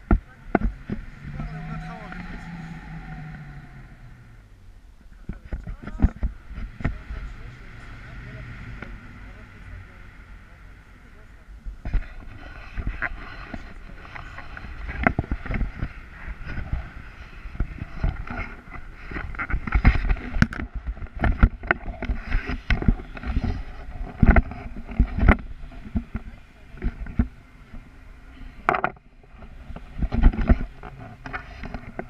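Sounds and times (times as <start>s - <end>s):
wind buffeting microphone: 0.0s - 32.0s
camera knocks and rustles: 14.6s - 27.3s, 28.6s - 32.0s.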